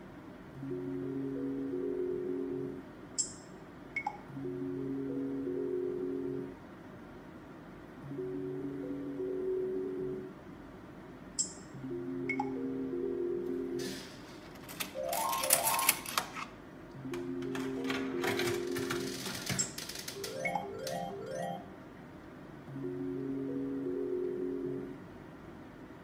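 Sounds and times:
stepped electronic bleeps: 12.3 - 12.6.

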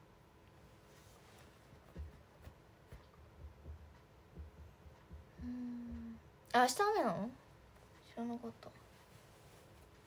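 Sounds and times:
woman humming: 5.3 - 6.3
woman speaking: 5.8 - 7.4, 8.0 - 8.8.

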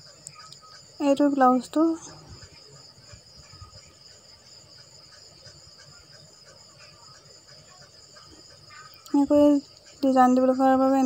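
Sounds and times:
high-pitched insect chirring: 0.0 - 11.0.

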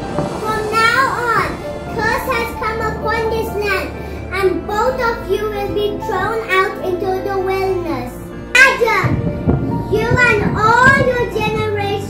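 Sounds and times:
background music: 0.0 - 12.0
child speaking: 0.4 - 12.0.

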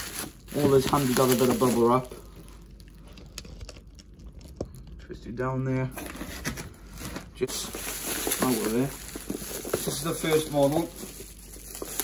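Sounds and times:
bubble wrap and cardboard rustling: 0.0 - 4.6, 5.9 - 12.0.

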